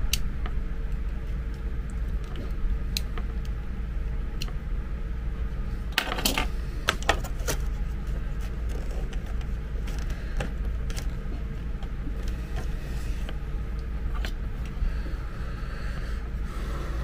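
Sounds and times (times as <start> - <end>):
low hum: 0.0 - 17.0.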